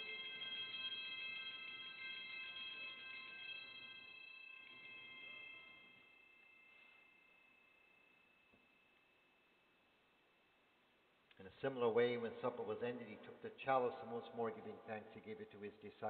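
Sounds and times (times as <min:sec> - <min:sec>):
altar bells ringing: 0:00.0 - 0:09.0.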